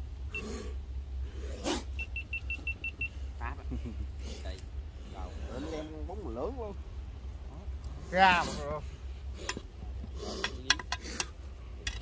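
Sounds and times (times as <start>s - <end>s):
high electronic beeps: 2.0s - 3.2s.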